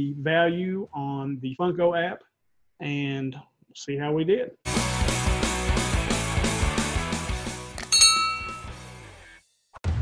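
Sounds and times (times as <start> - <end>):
bright ringing chime: 7.9 - 8.8.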